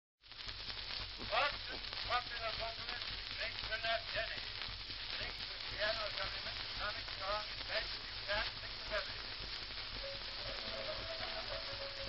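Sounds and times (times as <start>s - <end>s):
record surface hiss and crackle: 0.2s - 12.0s
muffled instrument notes: 9.9s - 12.0s
person singing: 10.0s - 12.0s.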